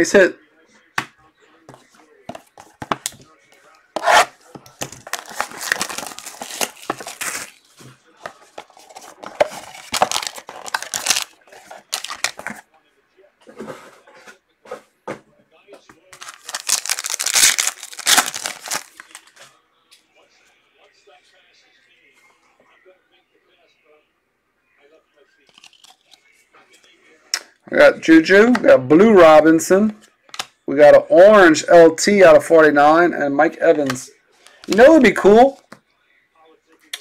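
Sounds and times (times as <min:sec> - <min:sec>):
wrappers tearing and crinkling: 0:04.8 - 0:07.7, 0:08.7 - 0:12.5, 0:16.2 - 0:19.3.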